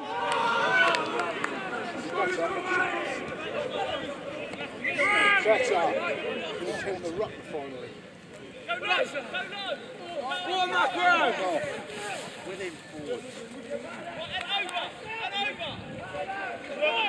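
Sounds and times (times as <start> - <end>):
people shouting and calling: 0.0 - 7.1, 8.6 - 17.0.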